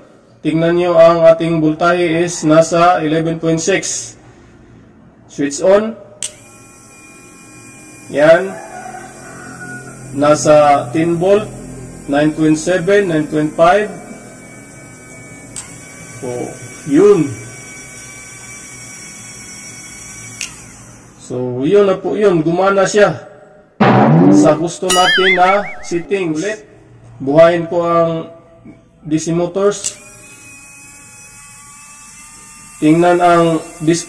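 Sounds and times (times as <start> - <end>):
small electric motor whining: 9.0 - 21.2.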